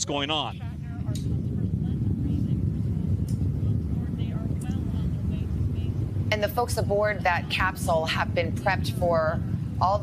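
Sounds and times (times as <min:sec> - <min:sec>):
faint voice: 0:00.0 - 0:06.3
rocket engine low rumble: 0:00.0 - 0:10.0.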